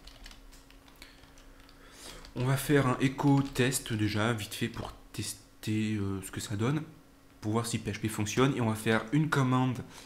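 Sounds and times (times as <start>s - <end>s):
computer keyboard typing: 0.0s - 3.9s, 4.6s - 4.9s.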